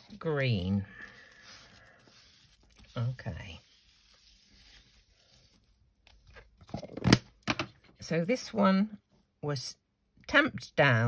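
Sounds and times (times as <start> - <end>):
paper rustling and scraping: 0.0 - 7.0.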